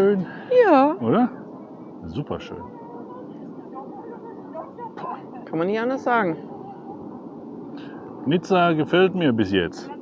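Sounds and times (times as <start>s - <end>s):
outdoor background rush: 0.0s - 10.0s.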